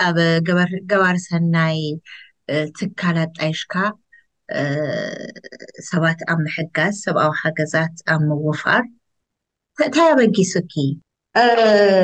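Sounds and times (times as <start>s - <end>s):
woman speaking: 0.0s - 8.9s, 9.8s - 12.0s.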